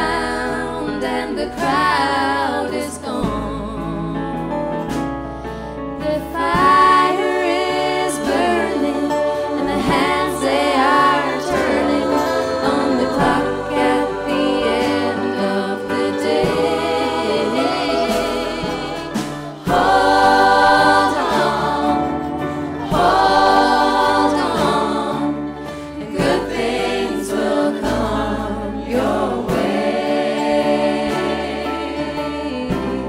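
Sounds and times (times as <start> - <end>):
gospel choir singing: 0.0 - 5.0, 6.0 - 33.0
band playing: 0.0 - 33.0.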